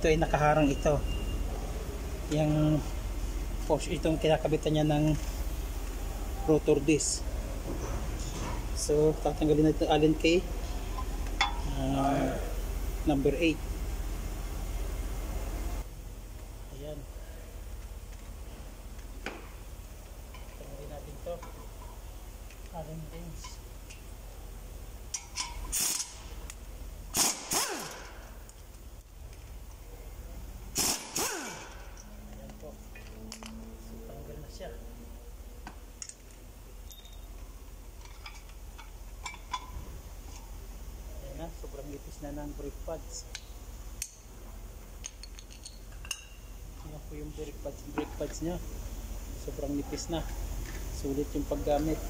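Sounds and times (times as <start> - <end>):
pneumatic impact wrench bursts: 25.2 - 26.4, 27.1 - 28.3, 30.7 - 32.0
metal tools clinking: 36.0 - 39.8, 45.0 - 46.5.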